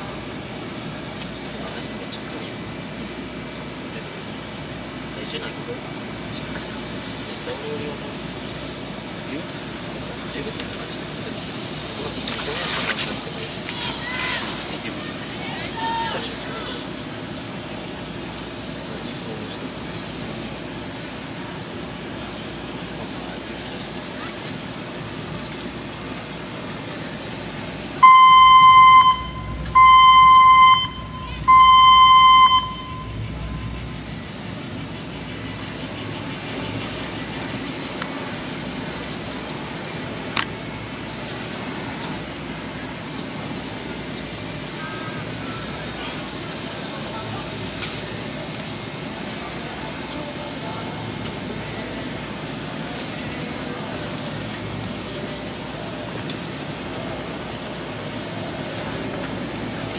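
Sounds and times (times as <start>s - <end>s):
signal horn blasts: 28.0s - 34.0s.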